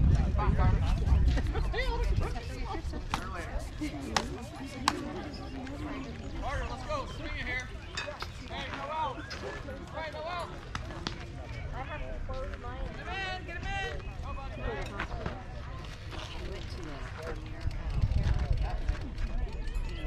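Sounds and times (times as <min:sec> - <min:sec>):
children and spectators chattering: 0:00.0 - 0:20.0.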